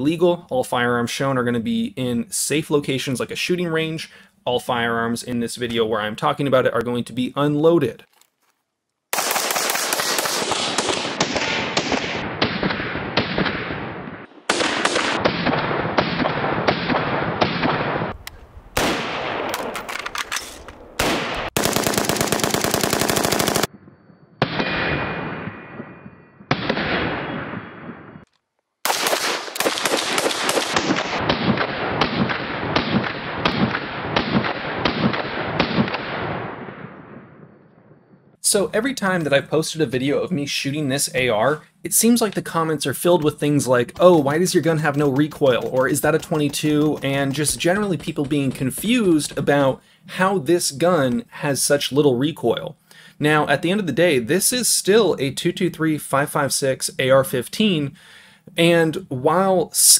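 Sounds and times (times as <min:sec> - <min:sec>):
rifle firing rapid shots: 0:09.1 - 0:18.2, 0:18.8 - 0:19.8, 0:21.0 - 0:23.7, 0:28.8 - 0:36.9, 0:43.1 - 0:49.6.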